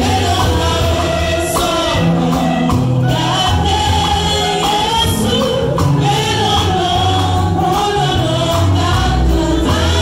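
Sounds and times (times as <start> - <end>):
amplified band with bass: 0.0 - 10.0
gospel choir singing: 0.0 - 10.0.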